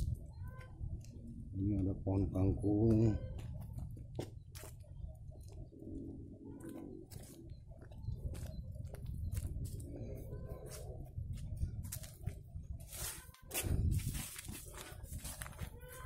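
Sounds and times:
footsteps on grass: 6.8s - 9.9s, 10.6s - 16.0s
rustle of grass and leaves: 8.3s - 16.0s
brushing rustle: 12.8s - 16.0s.

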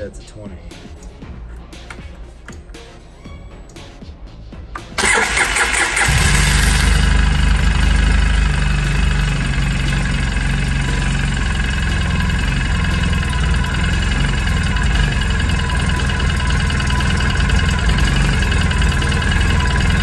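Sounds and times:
electric starter cranking engine: 4.8s - 20.0s
atv engine idling: 5.0s - 20.0s.

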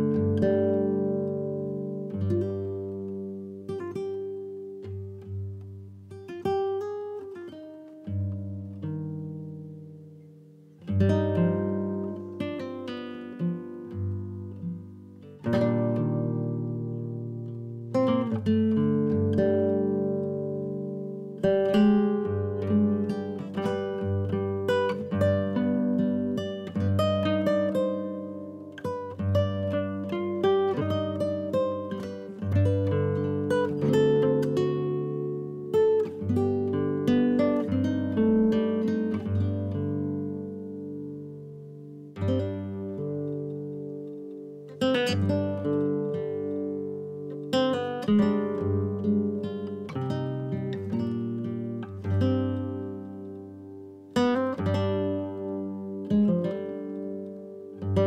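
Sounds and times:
acoustic guitar music: 0.0s - 58.0s.

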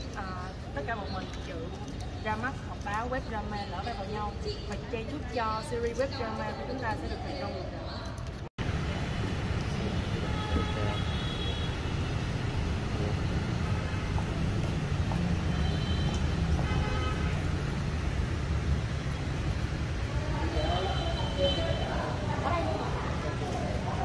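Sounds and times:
city traffic rumble: 0.0s - 24.0s
faint vehicle horns: 9.9s - 12.2s, 15.5s - 17.5s.

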